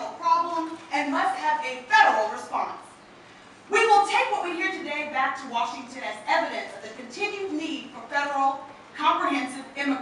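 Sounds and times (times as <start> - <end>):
woman speaking: 0.0 - 3.0, 3.7 - 10.0.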